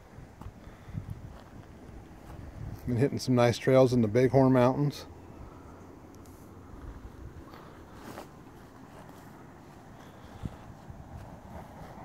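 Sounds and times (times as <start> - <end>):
wind rumble on microphone: 0.0 - 3.2, 6.6 - 12.0
footsteps on grass: 0.2 - 3.0, 6.2 - 12.0.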